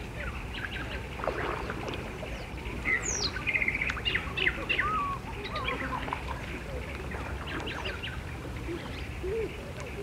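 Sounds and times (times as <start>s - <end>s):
bird chirps: 1.6s - 6.0s.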